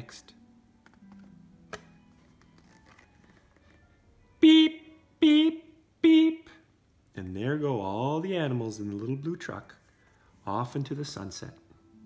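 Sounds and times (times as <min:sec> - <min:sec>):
page turning rustle: 0:00.9 - 0:03.8.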